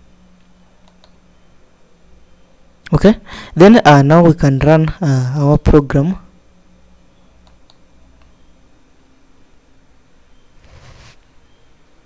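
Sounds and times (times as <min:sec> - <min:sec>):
faint computer clicks: 0:00.4 - 0:01.2, 0:07.4 - 0:08.4.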